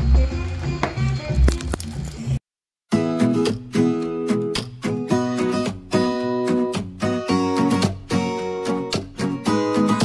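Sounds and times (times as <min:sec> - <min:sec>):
strummed acoustic guitar: 0:02.9 - 0:10.0.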